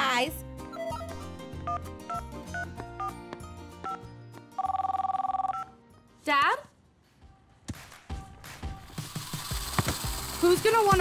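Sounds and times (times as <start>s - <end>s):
light background music: 0.0s - 11.0s
mobile phone ringing: 0.7s - 3.2s, 3.8s - 5.8s.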